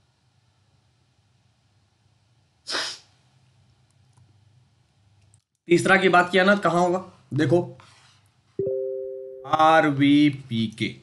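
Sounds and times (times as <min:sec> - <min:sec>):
person sneezing: 0:02.6 - 0:03.1.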